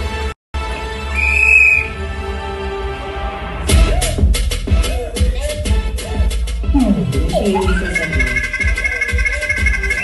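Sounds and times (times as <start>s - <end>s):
high whistle-like tone: 1.2s - 2.0s, 7.3s - 10.0s
bass-heavy music over sound system: 3.6s - 10.0s.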